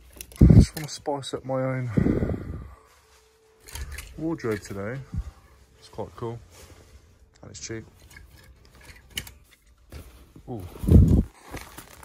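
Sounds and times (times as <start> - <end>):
clothes hangers clicking on a rail: 0.0 - 1.0, 3.6 - 5.1, 7.4 - 9.9.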